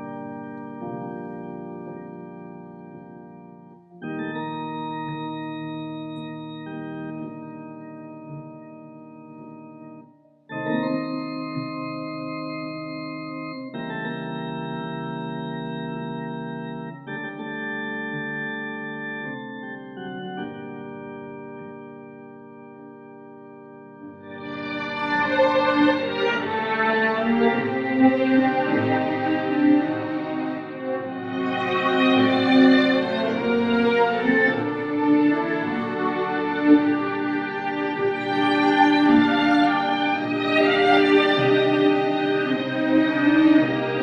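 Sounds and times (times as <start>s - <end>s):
organ playing slow chords: 0.0s - 44.0s.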